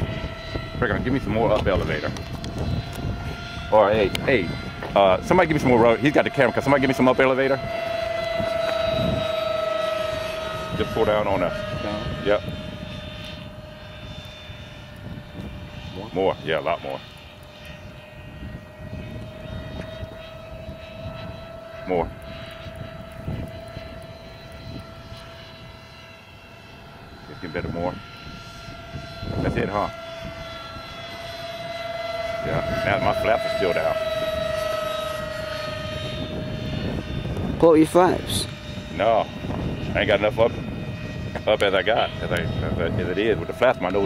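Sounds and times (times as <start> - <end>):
low rumble: 0.0 - 26.0, 26.8 - 44.0
electric ducted fans whining: 0.0 - 44.0.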